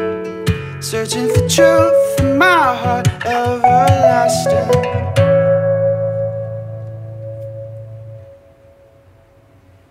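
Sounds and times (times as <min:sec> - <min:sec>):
guitar chord ringing: 0:01.2 - 0:09.6.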